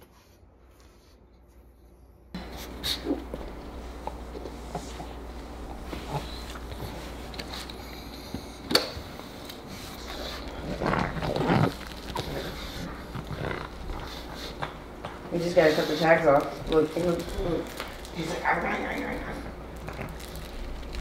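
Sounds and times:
dog growling: 5.7 - 21.0.

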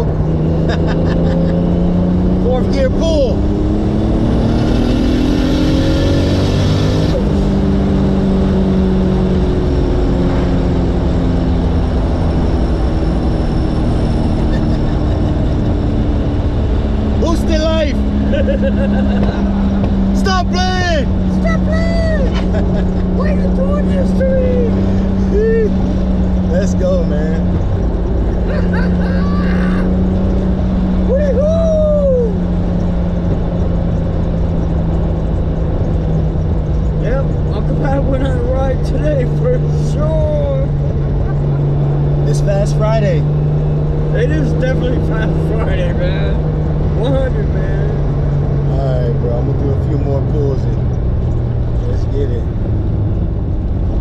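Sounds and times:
car engine revving: 0.0 - 54.0
engine droning: 0.0 - 54.0
people laughing: 0.6 - 1.7, 14.4 - 15.6, 18.2 - 19.9, 22.1 - 23.3, 28.4 - 29.9
people talking: 2.4 - 3.4, 17.2 - 25.8, 26.5 - 27.5, 31.1 - 32.3, 37.0 - 41.4, 42.2 - 43.2, 44.1 - 48.0, 48.7 - 50.8, 51.8 - 52.5.

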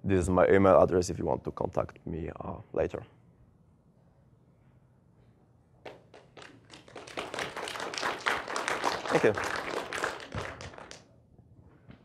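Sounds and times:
audience applause: 6.4 - 11.0.

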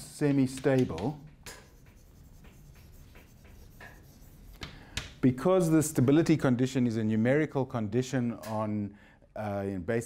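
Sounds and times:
chalk writing on blackboard: 1.2 - 5.2.

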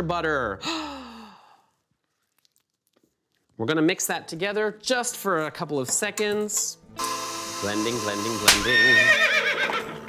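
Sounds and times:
man sighing: 0.6 - 1.7.

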